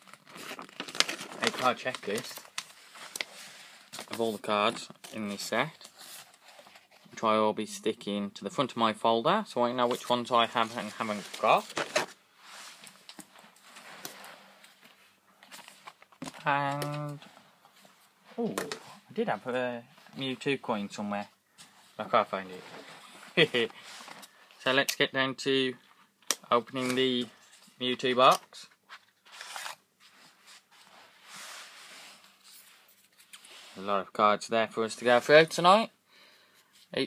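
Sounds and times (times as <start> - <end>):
soft paper rustles: 0.0 - 7.2, 9.8 - 20.6, 21.5 - 24.8, 26.0 - 34.0.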